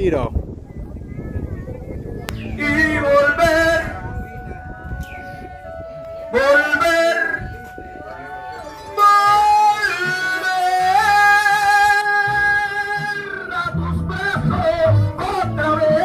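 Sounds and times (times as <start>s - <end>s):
guitar backing: 1.1s - 16.0s
man singing into microphone: 2.3s - 4.8s, 6.2s - 16.0s.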